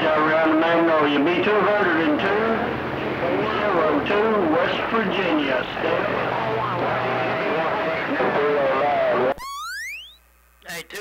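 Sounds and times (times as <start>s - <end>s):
garbled radio voices: 0.1s - 9.4s, 10.7s - 11.0s
radio static: 2.6s - 9.5s, 10.4s - 11.0s
steady radio whistle: 5.8s - 10.4s.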